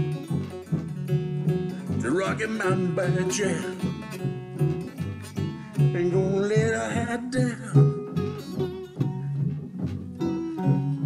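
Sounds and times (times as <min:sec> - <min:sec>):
acoustic guitar strumming: 0:00.0 - 0:11.0
slide diddley bow: 0:00.0 - 0:11.0
washtub bass: 0:00.0 - 0:11.0.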